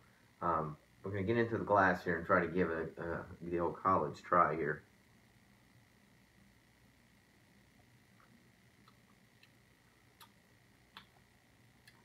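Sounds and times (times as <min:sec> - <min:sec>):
faint high hum: 0:00.0 - 0:12.0.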